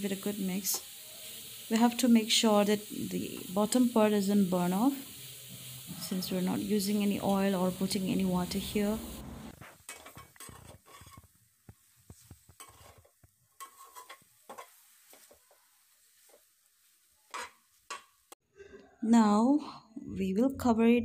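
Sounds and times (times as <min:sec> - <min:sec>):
light sizzling: 0:00.0 - 0:18.4
metal spatula scraping a pan: 0:05.2 - 0:08.0, 0:09.6 - 0:11.3, 0:12.5 - 0:16.5, 0:17.2 - 0:18.1.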